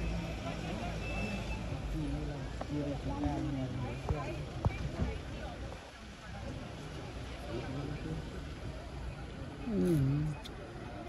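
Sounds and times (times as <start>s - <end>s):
vehicle engines driving slowly: 0.0s - 11.0s.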